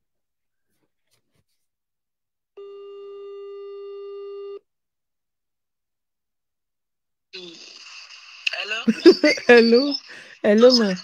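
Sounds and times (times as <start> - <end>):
telephone ring tone beep: 2.6 - 4.6.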